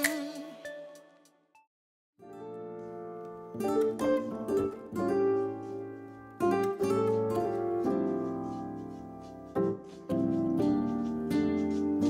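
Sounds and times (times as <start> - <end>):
plucked string music: 2.2 - 12.0.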